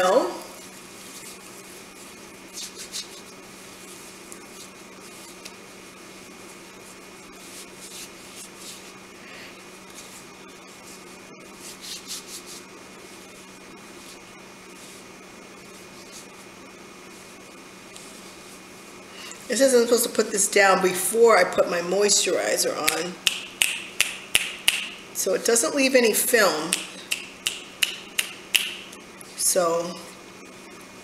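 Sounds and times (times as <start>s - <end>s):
steady low hum: 0.0s - 31.0s
hands rubbing lotion into skin: 2.5s - 3.3s.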